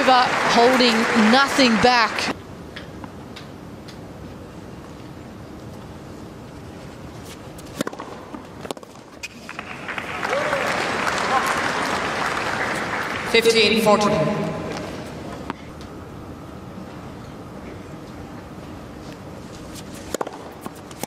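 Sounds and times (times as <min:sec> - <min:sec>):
crowd applause: 0:00.0 - 0:02.3, 0:09.4 - 0:13.5
racket hitting ball: 0:07.6 - 0:09.4, 0:19.8 - 0:21.0.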